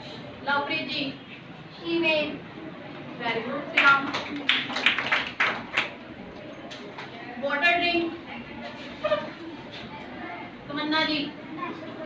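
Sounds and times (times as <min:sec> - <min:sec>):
children clapping in unison: 0:03.8 - 0:06.0.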